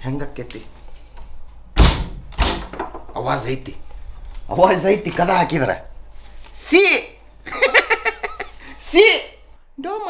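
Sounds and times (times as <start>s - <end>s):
heavy thuds on wooden door: 1.8s - 3.2s.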